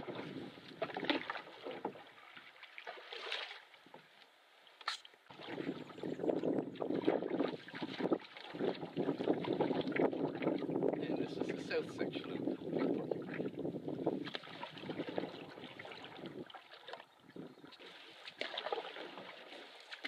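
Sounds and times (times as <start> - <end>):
water splashing at canoe hull: 0.0 - 4.1, 4.8 - 20.0
wind gusting across microphone: 5.4 - 16.5.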